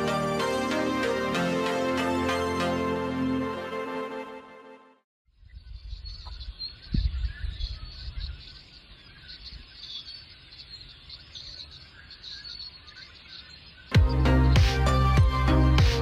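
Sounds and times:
small birds chirping: 0:05.4 - 0:15.0.

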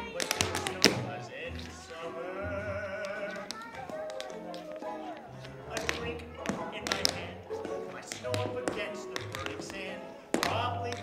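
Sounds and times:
shoes tapping on wooden floor: 0:00.0 - 0:11.0
song with backing music: 0:00.0 - 0:11.0.

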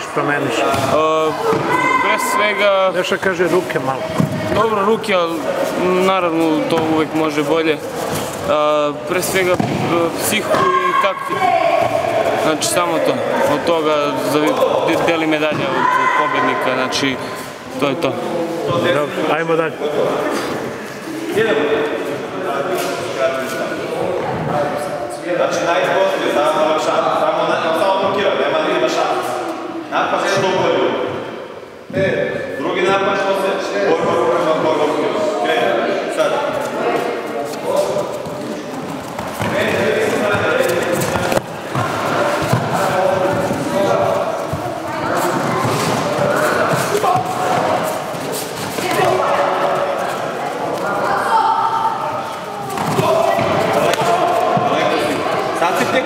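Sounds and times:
people talking and calling: 0:00.0 - 0:56.0.

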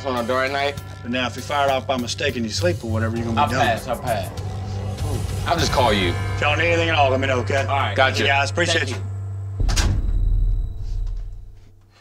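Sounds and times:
low rumble: 0:01.0 - 0:11.8.

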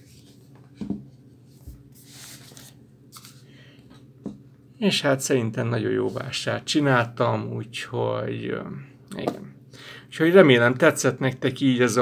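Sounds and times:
book knocking on wooden shelf: 0:00.8 - 0:01.1.

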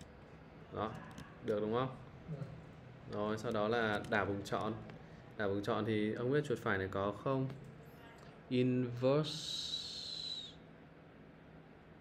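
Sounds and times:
low steady hum: 0:00.0 - 0:12.0
man's whistling s hiss: 0:09.4 - 0:10.7.

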